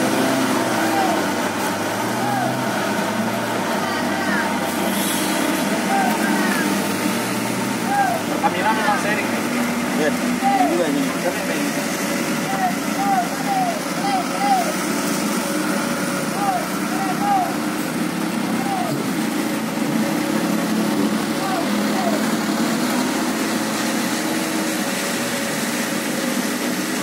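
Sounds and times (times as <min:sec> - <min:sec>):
rain hissing: 0:00.0 - 0:27.0
tyres on wet road: 0:00.0 - 0:27.0
vehicle engines climbing: 0:00.0 - 0:27.0
short repeated calls: 0:12.4 - 0:14.8.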